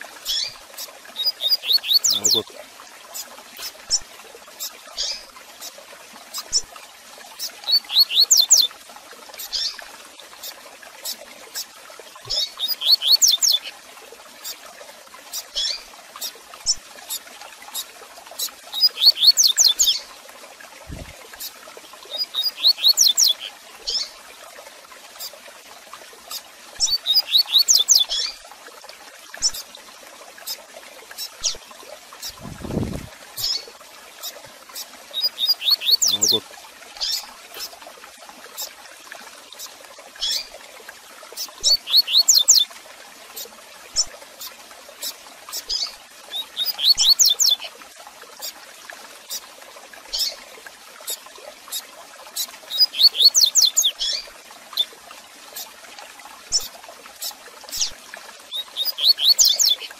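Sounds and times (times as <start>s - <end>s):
sharp bird chip calls: 1.2s - 2.4s, 35.2s - 36.4s, 41.6s - 42.6s, 46.6s - 47.6s.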